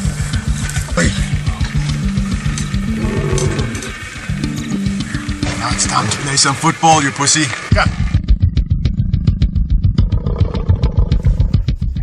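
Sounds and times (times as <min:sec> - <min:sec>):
background music with beat: 0:00.0 - 0:06.2, 0:07.7 - 0:12.0
lion growling: 0:02.7 - 0:04.1, 0:08.1 - 0:11.7.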